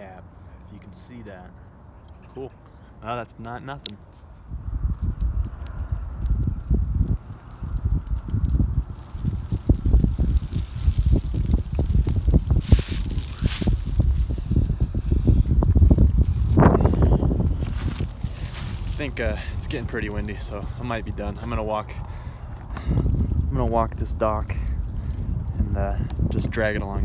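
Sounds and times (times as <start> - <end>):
wind buffeting microphone: 4.3 - 27.0.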